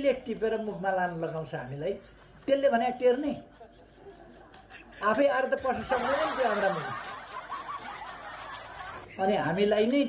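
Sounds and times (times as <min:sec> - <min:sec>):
speech: 0:09.1 - 0:10.0.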